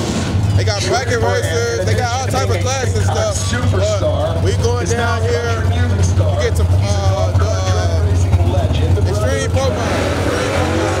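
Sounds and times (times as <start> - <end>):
man talking: 0.6 - 10.1.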